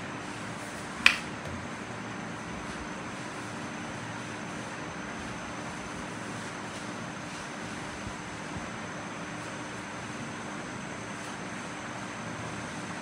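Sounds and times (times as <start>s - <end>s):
low room hum: 0.0s - 13.0s
plastic cap snapping shut: 1.0s - 1.6s.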